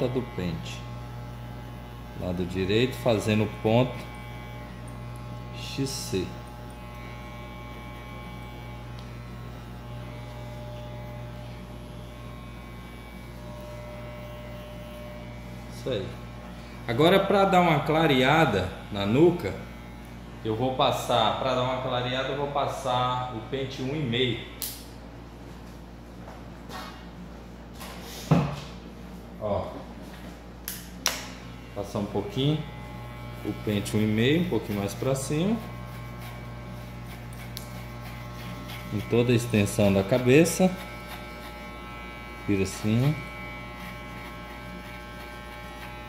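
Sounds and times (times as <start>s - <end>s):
electric hair clippers humming: 0.0s - 25.9s, 30.1s - 46.0s.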